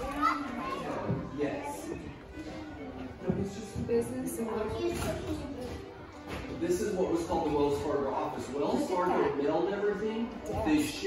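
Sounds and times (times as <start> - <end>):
children chattering: 0.0 - 3.7.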